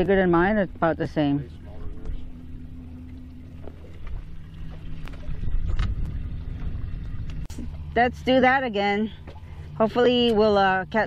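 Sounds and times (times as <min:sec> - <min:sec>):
boat motor idling: 0:00.0 - 0:11.0.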